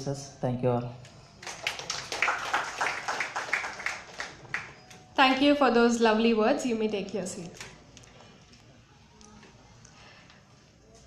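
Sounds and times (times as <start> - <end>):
audience clapping: 1.4 - 5.0.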